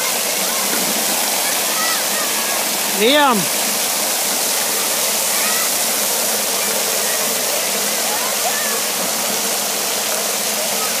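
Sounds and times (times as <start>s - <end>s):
distant children's voices: 0.0s - 2.9s, 4.4s - 11.0s
water jets spraying: 0.0s - 11.0s.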